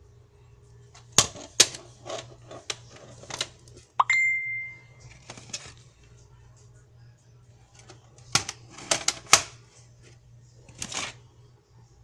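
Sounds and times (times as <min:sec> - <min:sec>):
high ringing tone: 0:04.0 - 0:05.1.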